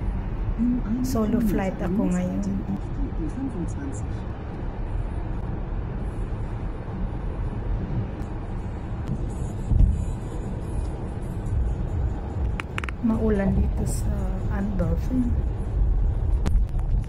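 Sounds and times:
car road rumble inside cabin: 0.0 - 17.0.

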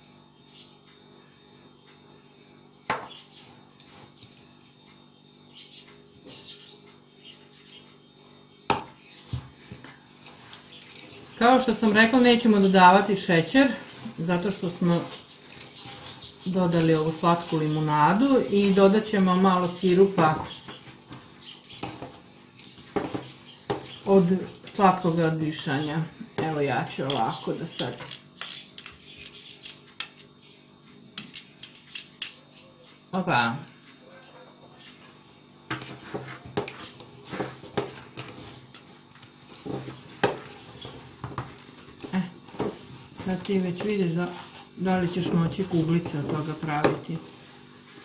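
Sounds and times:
knocks on ceramic bowl: 8.7 - 8.9
crumbly mixture rustling: 9.5 - 25.4, 35.8 - 48.0
hands kneading crumbly mix: 35.8 - 48.0.

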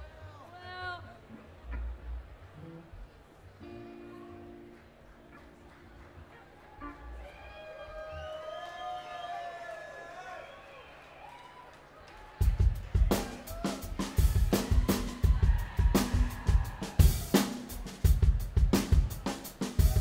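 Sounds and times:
sliding guitar tones: 1.2 - 7.2
drum kit playing steady beat: 12.4 - 20.0.

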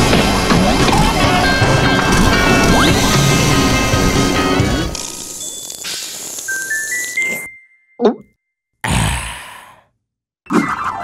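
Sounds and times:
loud breathy sigh: 8.8 - 9.9.

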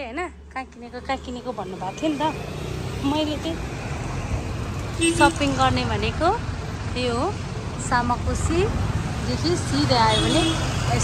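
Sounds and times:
people talking: 0.0 - 2.4, 3.0 - 3.6, 5.0 - 6.4, 7.0 - 11.0
street traffic rumble: 0.0 - 11.0.

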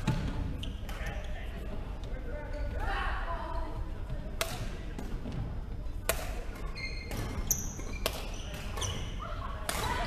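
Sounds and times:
rackets hitting shuttlecock: 4.4 - 5.2, 6.0 - 9.0, 9.6 - 10.0.

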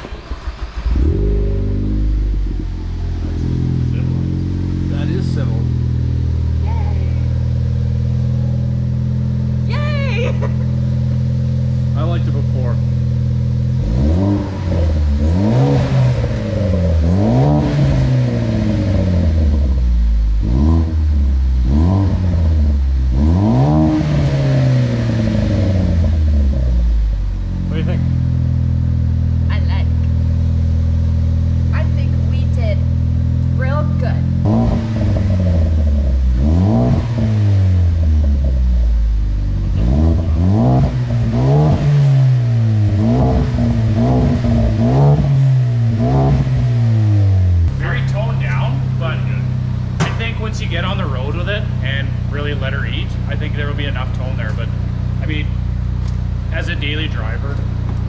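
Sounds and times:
car engine revving and idling: 0.0 - 58.0.

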